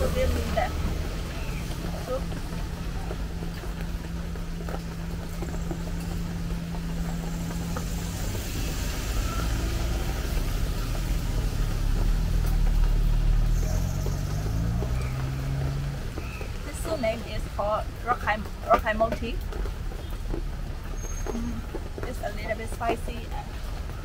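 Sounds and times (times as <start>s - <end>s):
van engine driving past: 0.0s - 18.7s
tyres on wet street: 0.0s - 24.0s.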